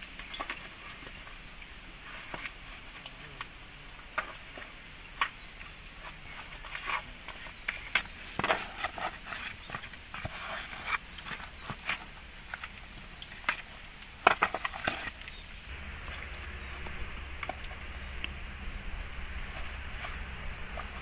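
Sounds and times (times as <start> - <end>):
high insect drone: 0.0 - 21.0.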